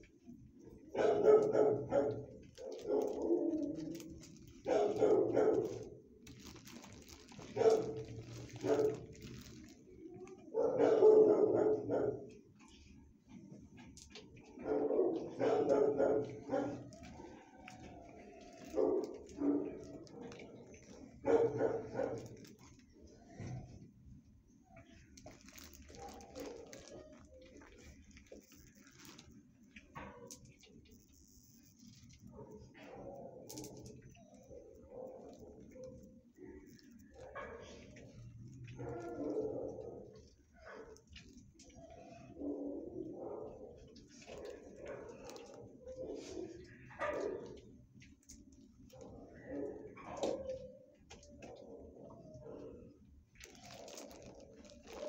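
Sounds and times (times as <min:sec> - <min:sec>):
dog barking: 0:00.9 - 0:09.5, 0:10.5 - 0:12.4, 0:14.5 - 0:22.7, 0:25.5 - 0:27.0, 0:32.3 - 0:41.1, 0:42.2 - 0:47.7, 0:48.9 - 0:50.8.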